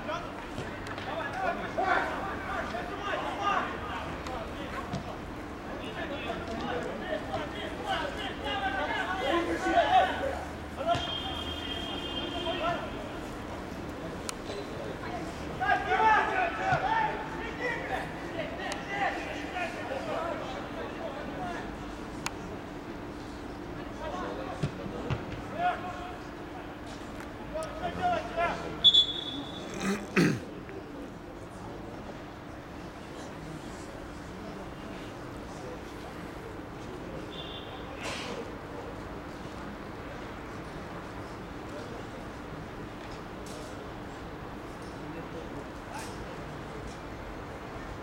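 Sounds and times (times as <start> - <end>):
players calling and shouting: 5.8 - 13.3, 15.2 - 20.5, 24.5 - 30.5
referee's whistle: 10.9 - 12.4, 28.8 - 29.7.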